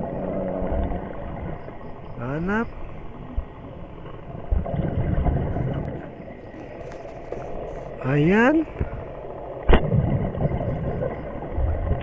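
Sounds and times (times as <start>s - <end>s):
underwater rumble: 0.0s - 12.0s.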